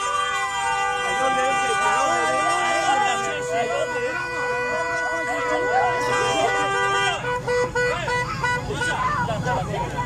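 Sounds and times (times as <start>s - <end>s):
car horns blaring: 0.0s - 10.0s
people's voices: 0.0s - 10.0s.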